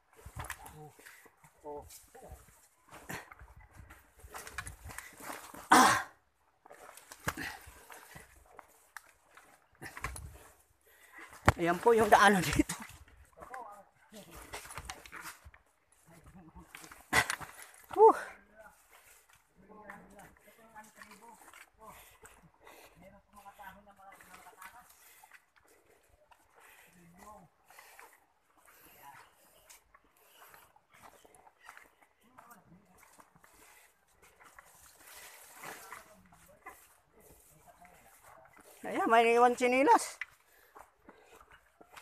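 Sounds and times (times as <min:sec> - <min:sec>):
footsteps on dirt trail: 0:00.0 - 0:42.0
brushing against plants: 0:33.7 - 0:40.0.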